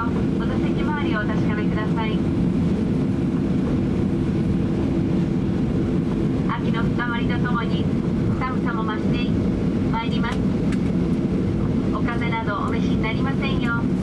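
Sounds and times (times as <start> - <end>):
airplane cabin rumble: 0.0 - 14.0.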